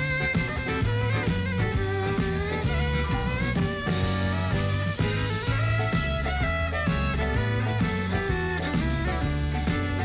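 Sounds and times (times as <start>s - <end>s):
drums: 0.0s - 10.0s
electric guitars: 0.0s - 10.0s
fiddle playing: 0.0s - 10.0s.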